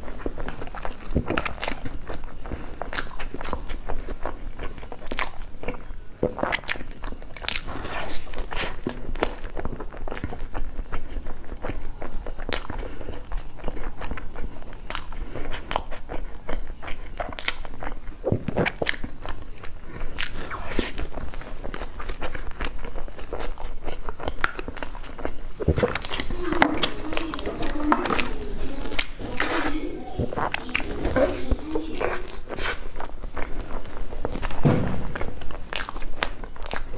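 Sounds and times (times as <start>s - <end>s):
biting and chewing: 0.0s - 36.9s
mouth clicks: 0.0s - 36.9s.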